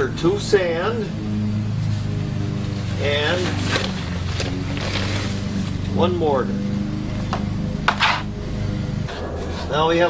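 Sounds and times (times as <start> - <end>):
steady low hum: 0.0 - 10.0
trowel scraping plastic tray: 7.9 - 8.3.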